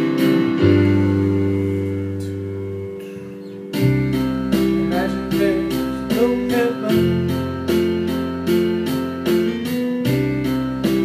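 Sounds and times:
piano chords backing track: 0.0s - 11.0s.

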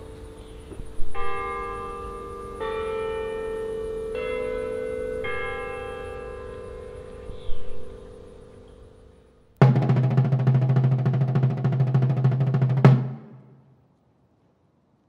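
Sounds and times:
louder hit: 9.6s - 13.7s.

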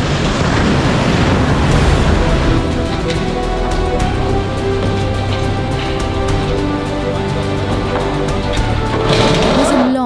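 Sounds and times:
boring machine grinding concrete: 2.6s - 10.0s.

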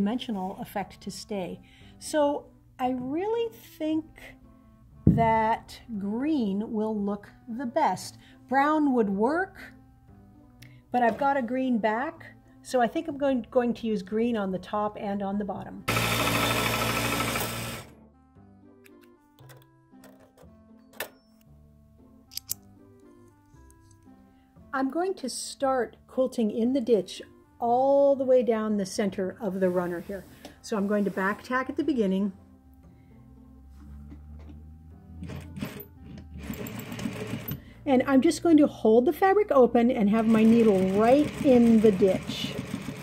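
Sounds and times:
soft background music: 0.0s - 43.0s
sewing machine motor running: 15.9s - 17.9s, 36.4s - 37.6s, 40.2s - 43.0s.

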